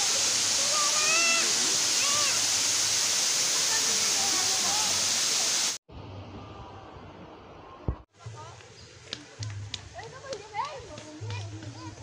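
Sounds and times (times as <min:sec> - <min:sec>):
waterfall pouring onto rock: 0:00.0 - 0:05.8.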